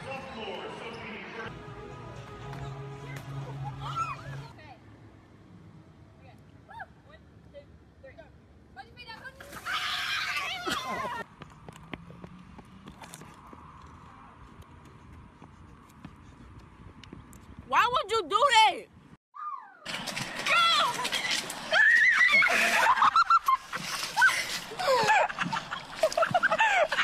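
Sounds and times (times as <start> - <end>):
faint outdoor background noise: 0.0 - 27.0
people shouting and shrieking: 3.6 - 4.5, 9.4 - 11.2, 19.4 - 23.1
people laughing: 22.2 - 27.0.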